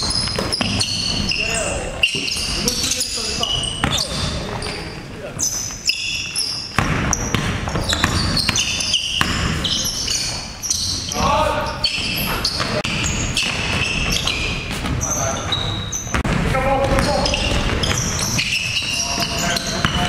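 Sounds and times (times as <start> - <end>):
players calling out: 0.0 - 20.0
sneakers squeaking: 0.0 - 20.0
basketball dribbled on hardwood floor: 6.8 - 9.6.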